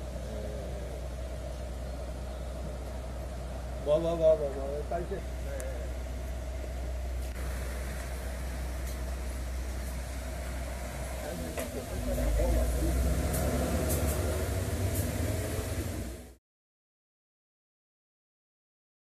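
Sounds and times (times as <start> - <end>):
faint voices: 0.0 - 1.3
vehicle engine idling: 0.0 - 16.4.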